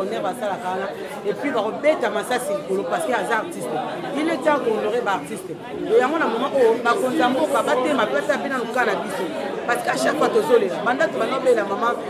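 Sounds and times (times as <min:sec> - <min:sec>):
voices chattering: 0:00.0 - 0:12.0.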